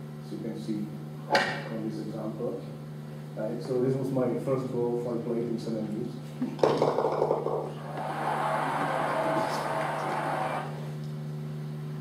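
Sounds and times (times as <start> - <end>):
low electrical hum: 0.0 - 12.0
soft rushing noise: 7.8 - 10.8.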